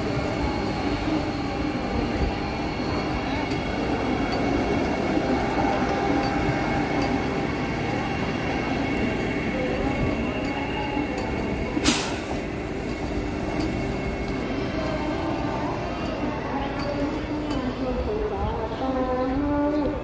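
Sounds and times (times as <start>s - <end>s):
people's voices: 0.0s - 20.0s
train wheels rumbling on rail: 0.0s - 20.0s.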